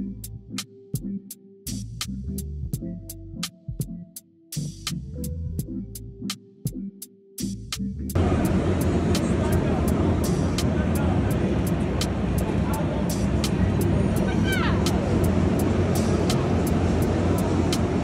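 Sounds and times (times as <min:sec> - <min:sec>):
regular ticking: 0:08.0 - 0:18.0
kart engines running: 0:08.2 - 0:18.0
people's voices: 0:08.2 - 0:18.0.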